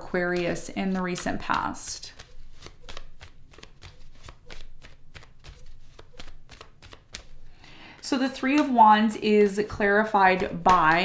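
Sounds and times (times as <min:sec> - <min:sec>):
cards being shuffled: 0:00.0 - 0:08.8, 0:09.4 - 0:11.0.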